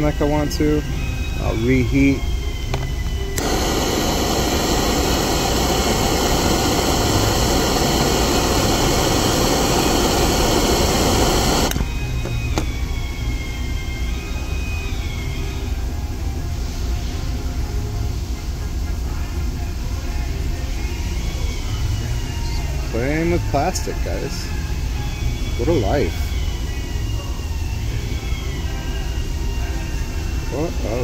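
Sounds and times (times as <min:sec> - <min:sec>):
gas torch hissing: 0:01.4 - 0:15.8, 0:20.8 - 0:26.8
gas torch igniter click: 0:02.7 - 0:12.7.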